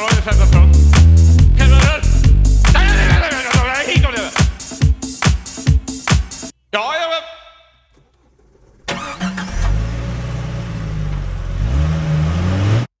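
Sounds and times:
car starter cranking: 7.8 - 12.1
car engine idling: 7.9 - 11.7.

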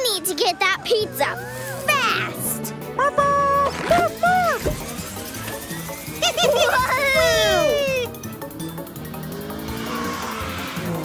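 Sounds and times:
cartoon background music: 0.0 - 11.0.

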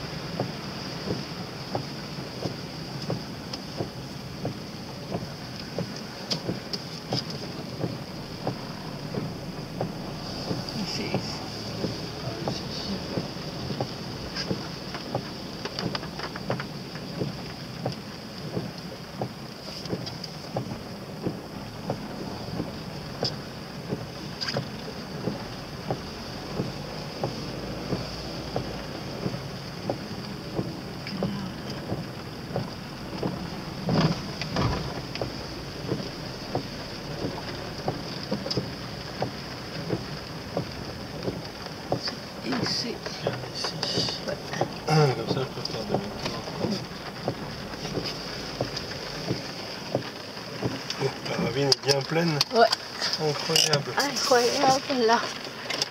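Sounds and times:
raindrops hitting car: 0.0 - 55.9
road noise: 0.0 - 55.9.

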